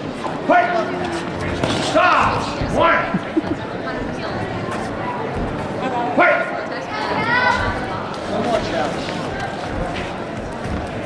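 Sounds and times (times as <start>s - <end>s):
voices in a large hall: 0.0s - 11.0s.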